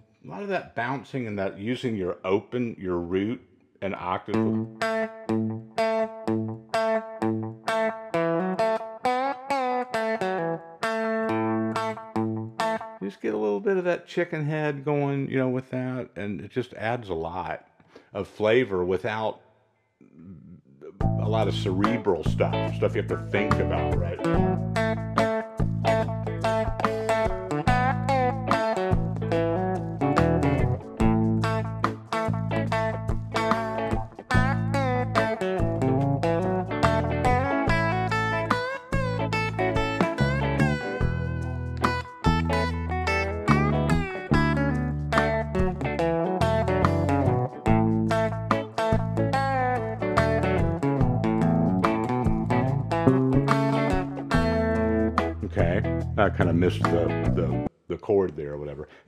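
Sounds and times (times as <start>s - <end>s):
bass line: 3.8s - 4.7s, 11.3s - 12.5s, 20.2s - 57.7s
electric guitar lead licks: 4.2s - 13.1s, 20.2s - 57.7s
slow groove backing track: 20.2s - 57.7s.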